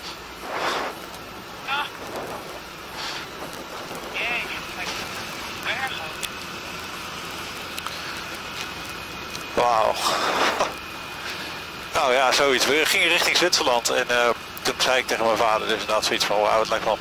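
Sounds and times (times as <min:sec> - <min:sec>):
motorcycle road noise: 0:00.0 - 0:17.0
wind noise: 0:01.7 - 0:05.0.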